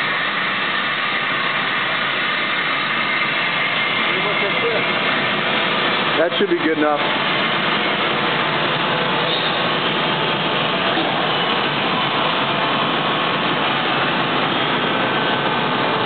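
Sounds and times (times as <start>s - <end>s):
plate bending machine running: 0.0s - 16.0s.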